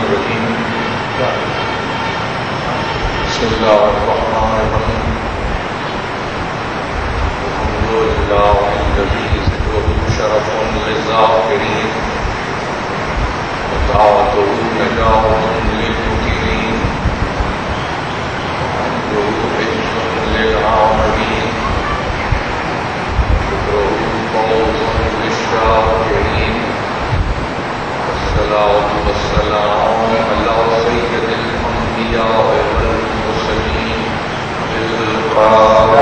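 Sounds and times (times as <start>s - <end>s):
man lecturing into microphone: 0.0s - 1.7s, 2.6s - 5.3s, 7.4s - 12.3s, 13.7s - 17.2s, 18.7s - 21.7s, 23.5s - 27.0s, 28.0s - 36.0s
faint man's voice: 0.0s - 5.8s, 7.3s - 17.9s, 18.6s - 36.0s
background hiss and rumble: 0.0s - 36.0s
steady background noise: 0.0s - 36.0s.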